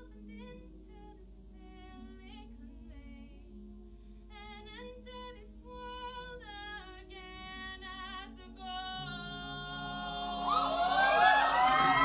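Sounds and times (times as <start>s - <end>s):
a cappella choir singing: 5.8s - 12.0s.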